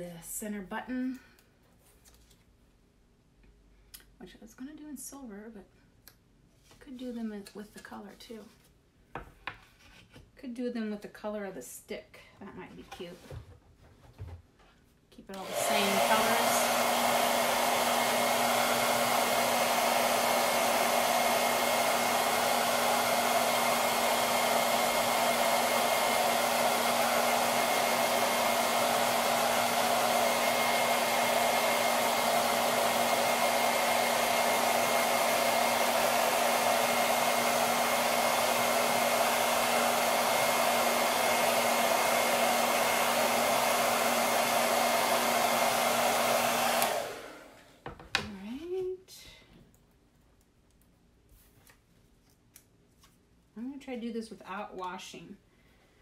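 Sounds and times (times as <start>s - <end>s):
hair dryer switched off: 15.3s - 47.6s
hair dryer running: 15.3s - 47.9s.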